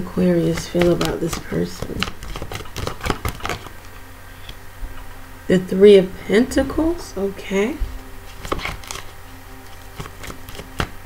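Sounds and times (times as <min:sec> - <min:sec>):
cards being shuffled: 0:00.3 - 0:03.7, 0:08.2 - 0:11.0.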